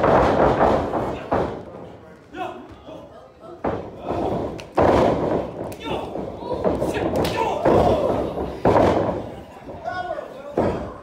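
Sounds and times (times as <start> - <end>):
crowd voices: 0.8 - 11.0.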